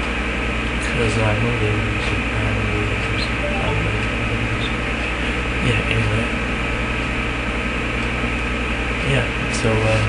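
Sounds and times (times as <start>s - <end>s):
low buzzing electrical hum: 0.0s - 10.0s.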